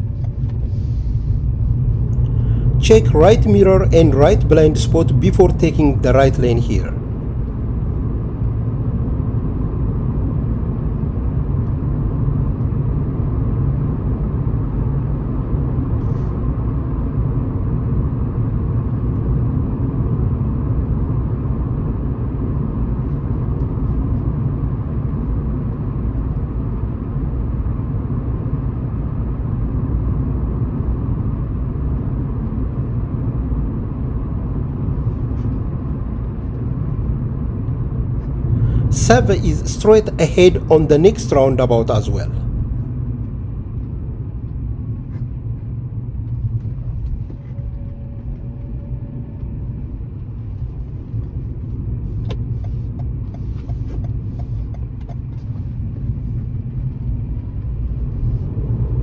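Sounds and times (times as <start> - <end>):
car tyre and engine rumble: 0.0 - 59.0.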